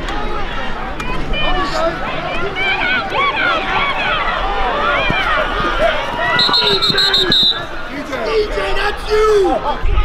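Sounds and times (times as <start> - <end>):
crowd yelling: 0.0 - 10.0.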